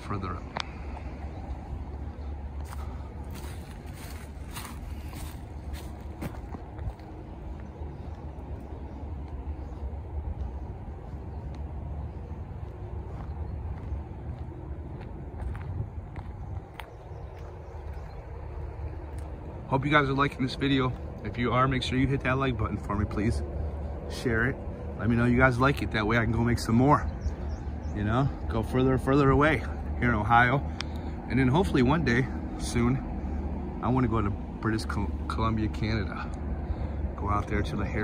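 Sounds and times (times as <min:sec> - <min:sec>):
footsteps on dirt trail: 0:00.0 - 0:31.3
low rumble: 0:00.0 - 0:38.0.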